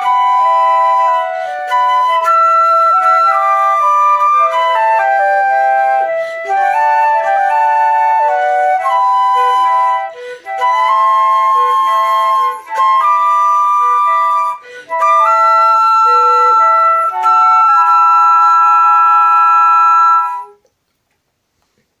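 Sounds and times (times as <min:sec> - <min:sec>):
flutes playing in harmony: 0:00.0 - 0:20.6.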